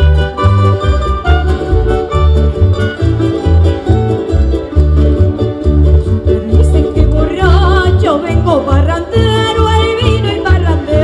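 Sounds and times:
accordion: 0:00.0 - 0:11.0
plucked strings: 0:00.0 - 0:11.0
pulsing bass: 0:00.0 - 0:11.0.

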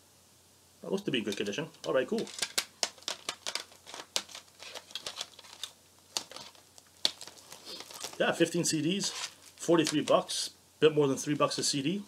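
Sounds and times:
plastic cd case clicking: 0:01.0 - 0:08.2, 0:09.1 - 0:10.2.

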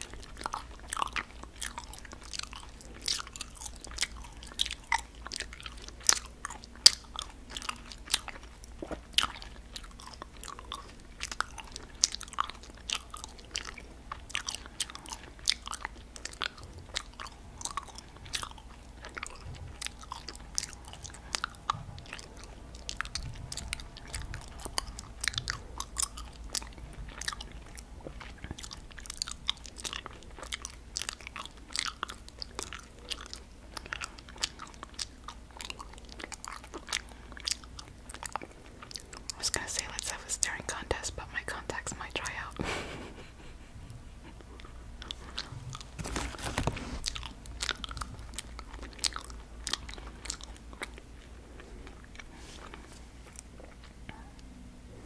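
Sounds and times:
chewing candy with mouth clicks: 0:00.0 - 0:43.2, 0:43.8 - 0:55.0.

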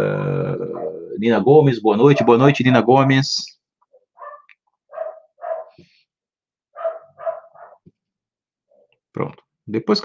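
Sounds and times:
dog barking: 0:02.1 - 0:02.6, 0:04.1 - 0:05.8, 0:06.7 - 0:07.9.

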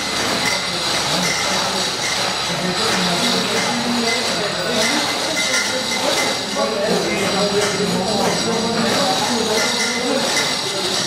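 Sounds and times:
chain hoist chain rattling: 0:00.0 - 0:11.0.

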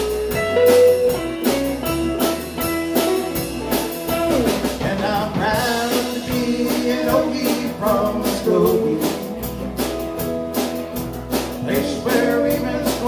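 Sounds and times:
electric guitar lead: 0:00.0 - 0:07.5
bass line: 0:00.0 - 0:13.0
drum beat: 0:00.0 - 0:13.0.

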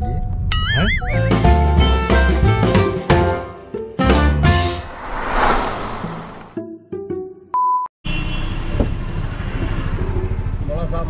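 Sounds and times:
road traffic rumble: 0:04.5 - 0:06.6, 0:08.5 - 0:11.0.

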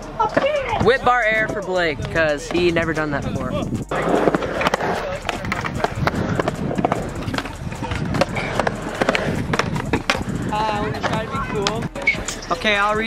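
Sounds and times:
scooter wheels rolling on concrete: 0:00.0 - 0:13.0
scooter deck clacking on ground: 0:04.1 - 0:12.8.

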